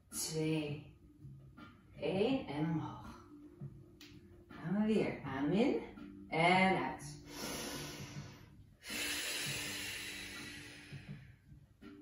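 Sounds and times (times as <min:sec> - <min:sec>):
soft background music: 0:00.0 - 0:12.0
woman breathing audibly: 0:07.2 - 0:11.7.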